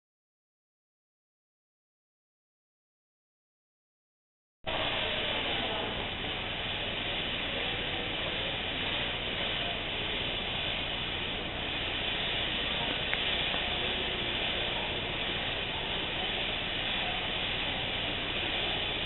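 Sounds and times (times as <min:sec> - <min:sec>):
background hiss: 0:04.7 - 0:19.0.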